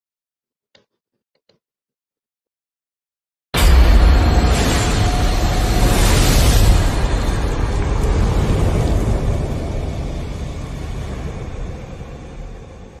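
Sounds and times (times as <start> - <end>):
deep fire rumble sound effect: 3.6 - 13.0.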